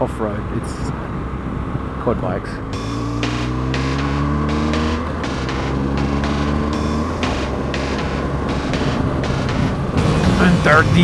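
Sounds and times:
motorcycle engine changing gear: 2.6s - 11.0s
background music with steady beat: 2.7s - 11.0s.

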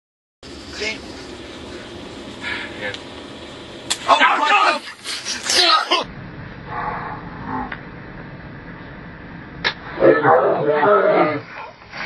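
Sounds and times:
car cabin low rumble: 0.4s - 9.6s.

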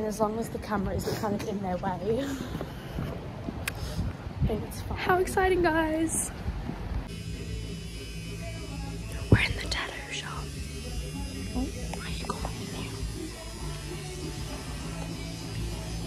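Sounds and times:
tattoo machine buzzing: 7.0s - 16.0s
whispered voices: 8.7s - 13.9s.

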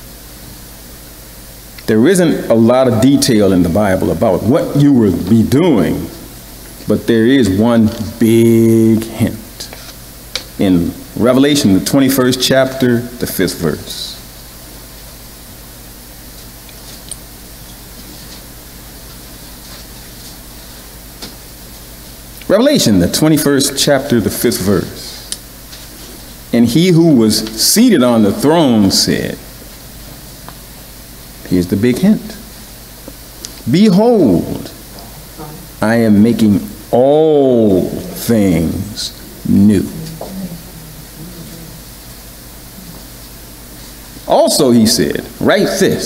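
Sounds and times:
low electrical hum: 0.0s - 46.0s
steady hiss: 0.0s - 46.0s.

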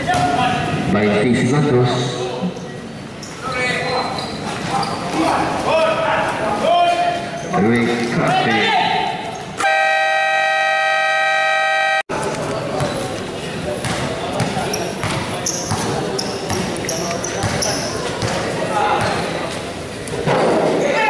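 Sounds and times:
sneakers squeaking: 2.5s - 5.9s, 6.8s - 8.1s, 12.2s - 21.0s
basketball buzzer: 9.6s - 12.0s
basketball bouncing on court: 13.8s - 19.2s.

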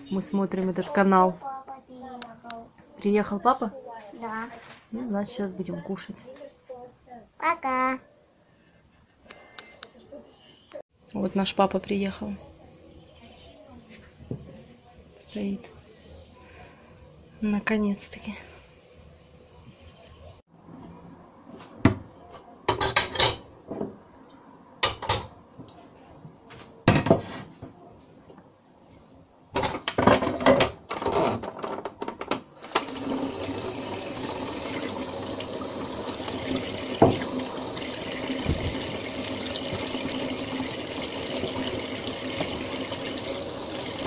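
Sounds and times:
dishes and pans clinking: 22.7s - 23.5s
kitchen tap running: 32.6s - 44.0s.

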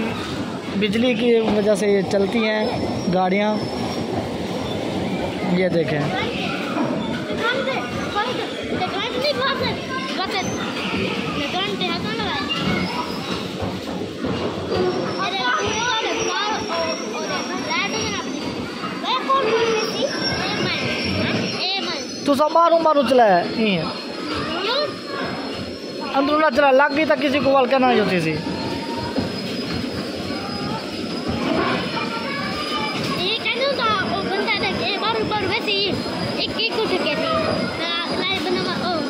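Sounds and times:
bumper cars rumbling and clattering: 0.0s - 39.0s.

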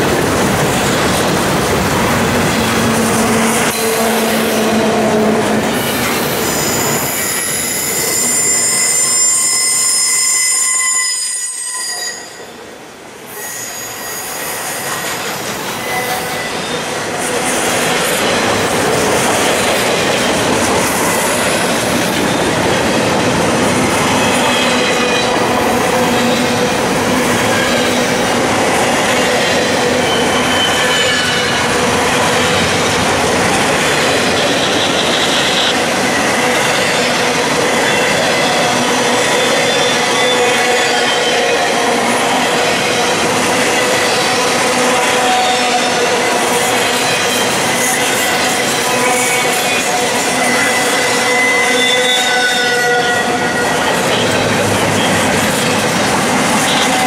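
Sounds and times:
wheels squealing: 29.4s - 32.9s.

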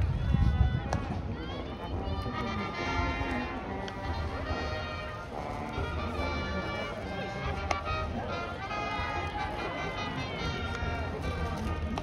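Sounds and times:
stadium cheering music: 1.5s - 12.0s.

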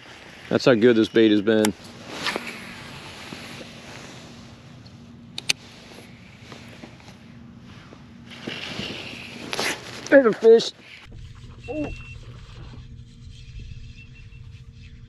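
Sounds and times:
faint steady hum: 0.0s - 15.0s
clothing rustling: 1.8s - 10.9s
sharp clicks: 5.4s - 5.6s.

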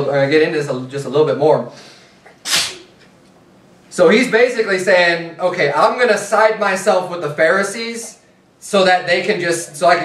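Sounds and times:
man sniffing: 1.8s - 3.0s.

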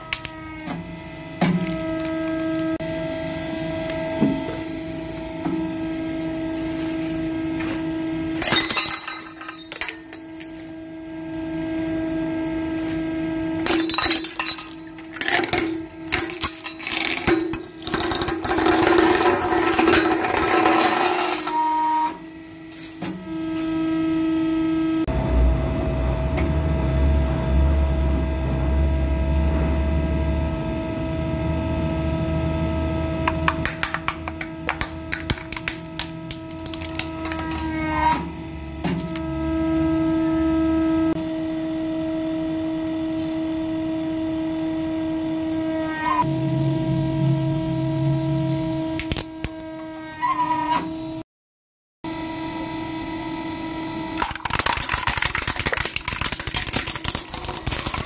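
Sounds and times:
glass crunching and cracking: 8.4s - 10.6s, 13.7s - 19.8s, 54.2s - 58.0s
plastic toys creaking and cracking: 36.5s - 37.9s, 54.2s - 58.0s.

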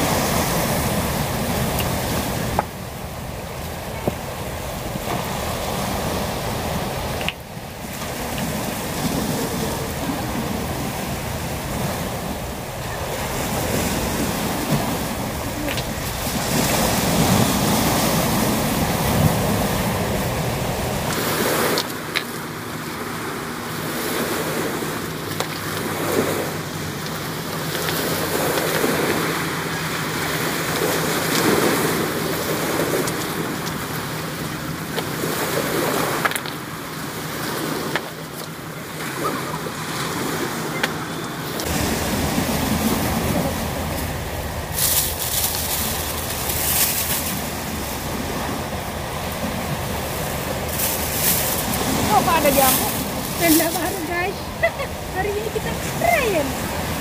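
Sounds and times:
wind buffeting microphone: 0.0s - 22.2s, 37.0s - 57.0s
waves breaking on rocky shore: 0.0s - 57.0s.

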